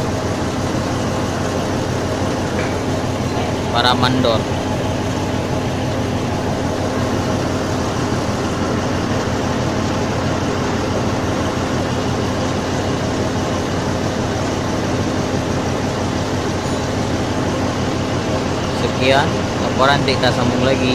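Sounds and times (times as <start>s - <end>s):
diesel engine running steadily: 0.0s - 20.9s.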